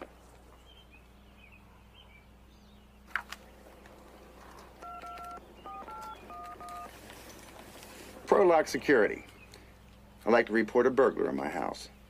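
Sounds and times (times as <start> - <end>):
touch-tone keypad beeps: 4.8 - 6.9.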